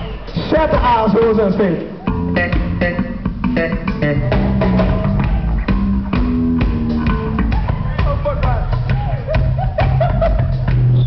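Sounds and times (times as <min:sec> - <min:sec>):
bass guitar: 0:00.0 - 0:11.0
live band music: 0:00.0 - 0:11.0
steady beat: 0:00.0 - 0:11.0
guitar: 0:02.0 - 0:11.0.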